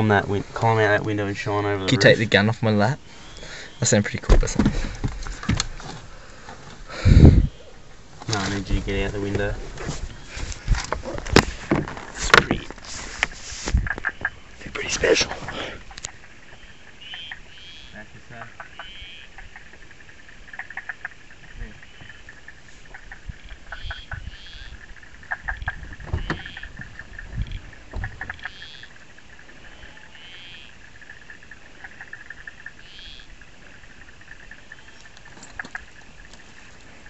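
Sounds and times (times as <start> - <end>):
animals chirping: 0.0 - 8.0, 13.8 - 37.0
knocks and rustles of movement: 4.0 - 16.7, 24.8 - 29.7, 33.4 - 37.0.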